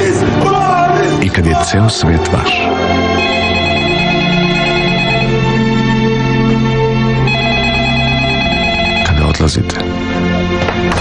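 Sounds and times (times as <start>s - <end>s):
background music chords: 0.0s - 11.0s
cordless phone ringing: 3.2s - 5.6s, 7.2s - 9.4s.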